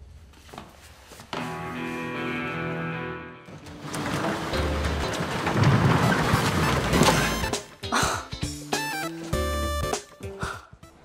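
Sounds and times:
caster wheels rumbling on floor: 3.5s - 7.8s.

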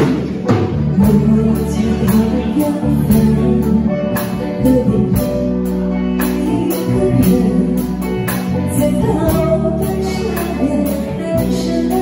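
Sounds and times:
guitar: 0.0s - 12.0s
keyboard: 0.0s - 12.0s.

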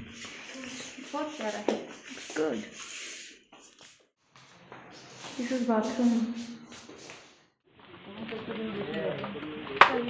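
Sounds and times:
rustling rubbing noise: 0.0s - 7.4s.

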